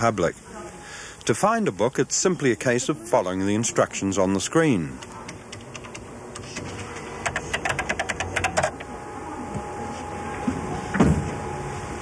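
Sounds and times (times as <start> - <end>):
keyboard typing clicks: 5.0 - 8.9.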